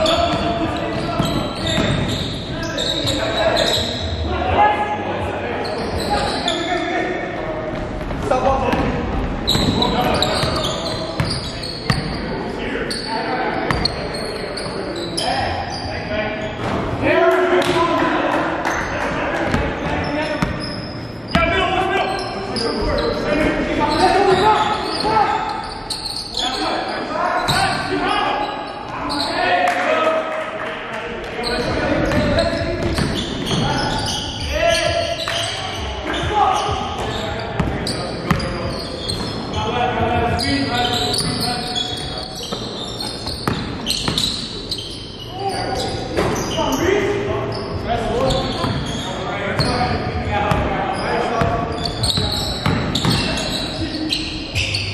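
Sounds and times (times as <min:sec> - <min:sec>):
echoing voices: 0:00.0 - 0:54.9.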